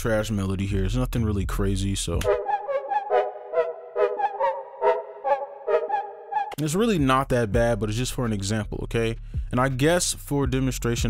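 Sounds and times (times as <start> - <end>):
sustained synth chords: 2.2 - 6.6
synthesizer plucked melody: 2.2 - 6.6.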